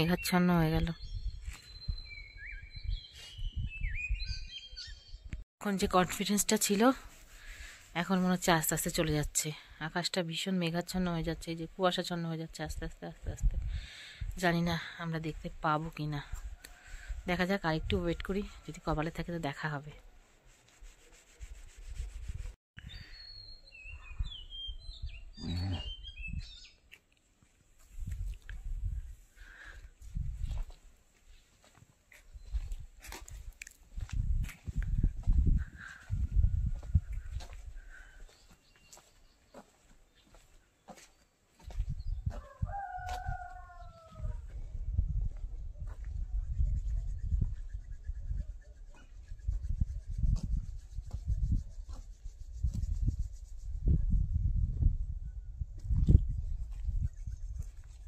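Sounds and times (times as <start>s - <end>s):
wind buffeting microphone: 0.7s - 5.4s, 12.6s - 14.7s, 23.8s - 26.7s, 27.8s - 30.8s, 32.2s - 38.6s, 41.6s - 58.0s
birds whistling: 22.8s - 26.8s
microphone handling rumble: 32.5s - 37.7s.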